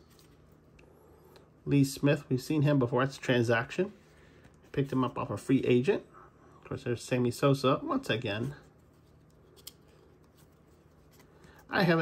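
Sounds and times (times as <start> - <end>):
trading cards being handled: 0.0 - 0.8, 8.1 - 12.0.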